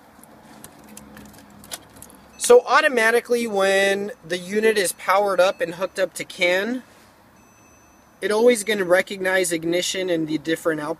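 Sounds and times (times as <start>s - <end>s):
clicks and handling noise: 0.2s - 2.2s.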